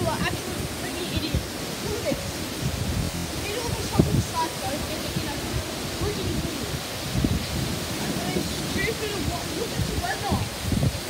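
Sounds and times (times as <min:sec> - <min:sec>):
gusting wind: 0:00.0 - 0:11.0
heavy rain: 0:00.0 - 0:11.0
wind buffeting microphone: 0:00.0 - 0:11.0.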